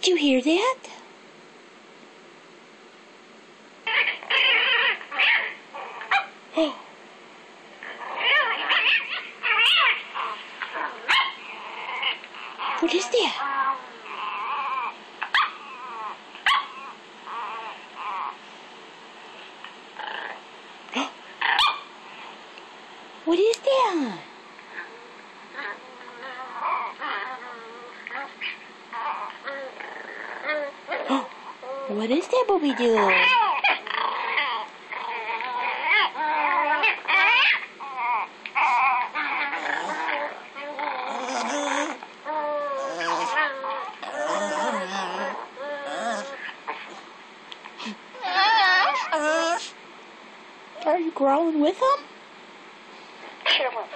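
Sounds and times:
puppy whimpering through speaker: 0:03.9 - 0:06.8, 0:07.9 - 0:18.4, 0:23.7 - 0:47.0, 0:47.8 - 0:49.8.

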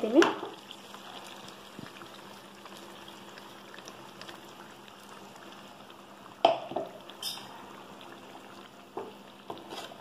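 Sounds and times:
curry bubbling and sizzling: 0:00.0 - 0:10.0.

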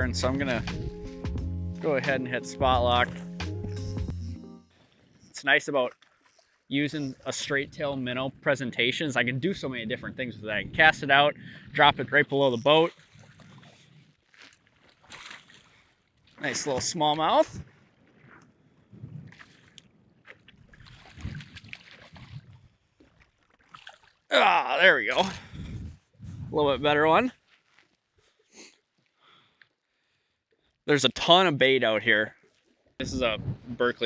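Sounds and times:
man speaking: 0:00.0 - 0:00.8, 0:01.8 - 0:03.2, 0:05.3 - 0:05.9, 0:06.7 - 0:12.9, 0:16.4 - 0:17.5, 0:24.3 - 0:25.4, 0:26.5 - 0:27.3, 0:30.9 - 0:32.3, 0:33.0 - 0:34.0
water noise: 0:00.0 - 0:03.8, 0:04.7 - 0:27.3
faint wind: 0:04.8 - 0:15.2, 0:24.4 - 0:27.5, 0:33.0 - 0:34.0
faint breath or sniff: 0:28.3 - 0:30.3.

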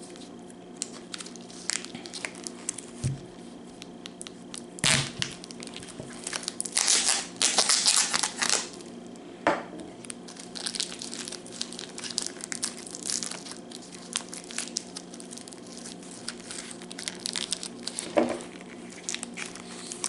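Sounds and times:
plastic crinkling and tearing: 0:00.0 - 0:03.2, 0:03.8 - 0:09.0, 0:10.0 - 0:20.0.

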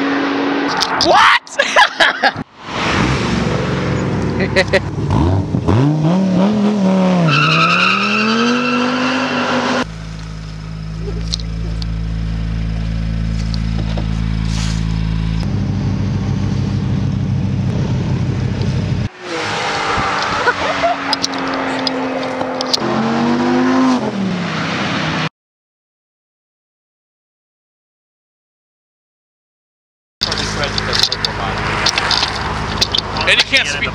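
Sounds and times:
car engine revving: 0:02.6 - 0:25.3, 0:30.2 - 0:33.9.

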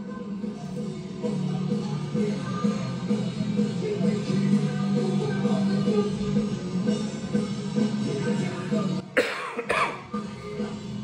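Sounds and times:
live hard rock concert recording: 0:00.1 - 0:09.0
man coughing: 0:09.2 - 0:10.2.

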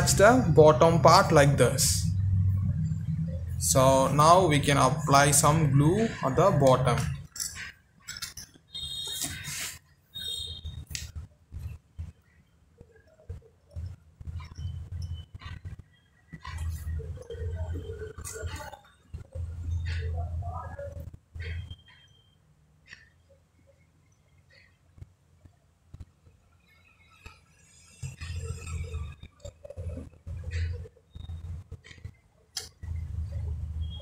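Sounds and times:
low uneven background noise: 0:00.0 - 0:34.0.

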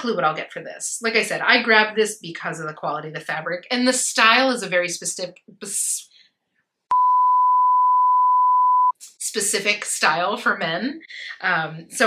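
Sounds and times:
electronic beep tone: 0:06.9 - 0:09.0.

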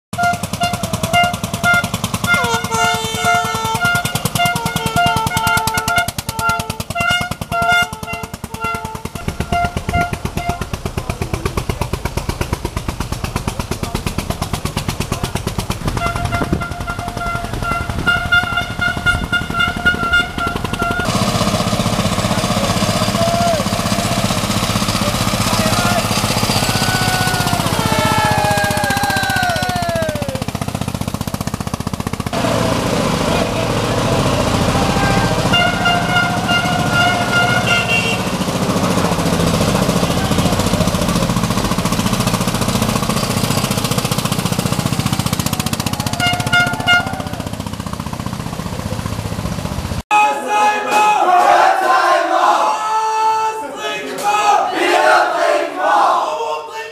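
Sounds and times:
vehicle horns honking: 0:00.1 - 0:11.6, 0:15.8 - 0:21.2, 0:32.4 - 0:41.4, 0:44.8 - 0:47.8
engines rumbling: 0:00.1 - 0:50.1.

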